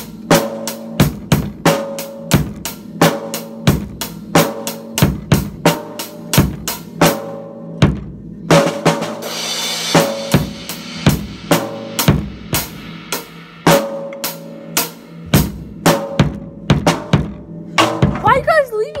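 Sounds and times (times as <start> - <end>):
drum kit steady beat: 0.0 - 19.0.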